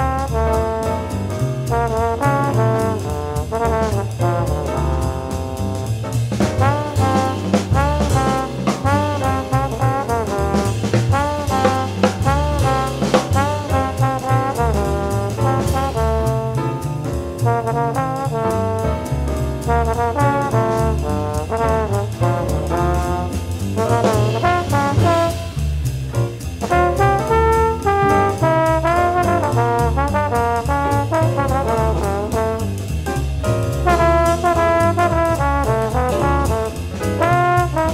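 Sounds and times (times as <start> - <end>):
trombone melody: 0.0 - 25.8, 26.6 - 37.9
bass line: 0.0 - 37.9
drums with cymbals: 0.0 - 37.9.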